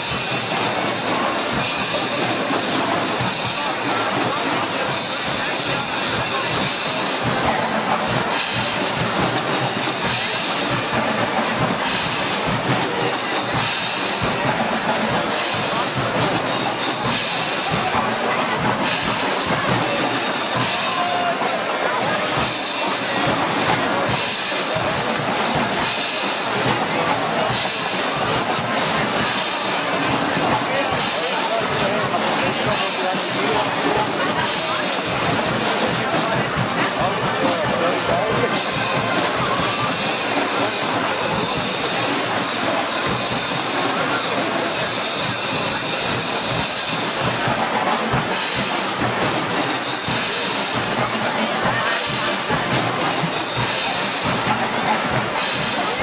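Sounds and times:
drum beat with cymbals: 0:00.0 - 0:56.0.

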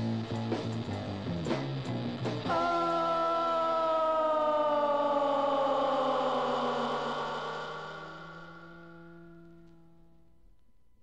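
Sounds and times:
steady low drone: 0:00.0 - 0:11.0
siren-like sliding tone: 0:04.0 - 0:10.3.

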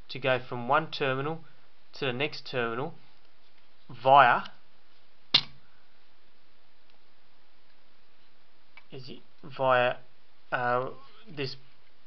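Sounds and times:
faint steady hiss: 0:00.0 - 0:12.0
sharp click of handled housing: 0:05.3 - 0:05.6.

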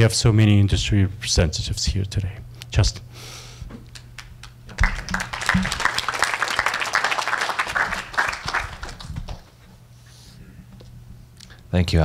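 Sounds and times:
audience applauding: 0:04.0 - 0:09.6.

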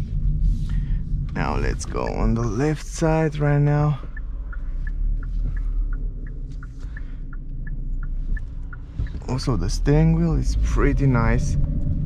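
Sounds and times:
car rumbling on road: 0:00.0 - 0:12.0
turn signal ticking: 0:01.1 - 0:12.0.

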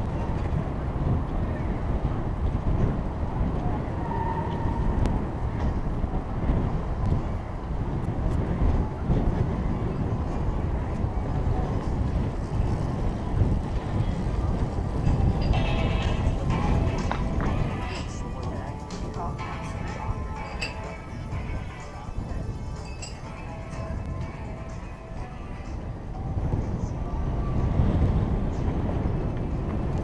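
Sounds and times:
wind on microphone: 0:00.0 - 0:30.0.

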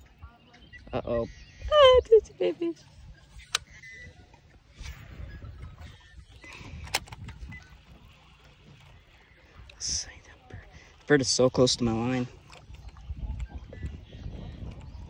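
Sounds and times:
wind rumble on microphone: 0:00.0 - 0:15.0
sharp clicks: 0:03.4 - 0:04.0, 0:06.4 - 0:08.0.

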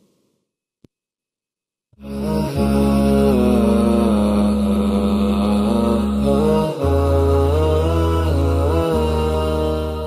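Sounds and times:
melodic vocal chanting: 0:02.0 - 0:10.0
steady low drone: 0:02.0 - 0:10.0.

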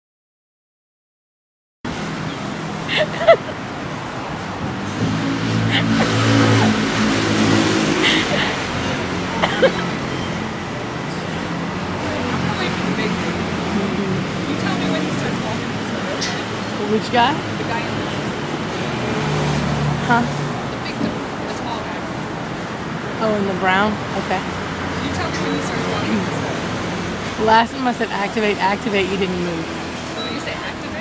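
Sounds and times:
road traffic noise: 0:01.9 - 0:31.0
vehicle engine humming: 0:01.9 - 0:31.0.

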